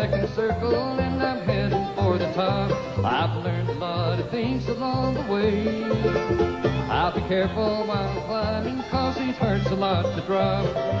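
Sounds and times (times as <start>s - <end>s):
banjo: 0.0s - 11.0s
bluegrass band playing: 0.0s - 11.0s.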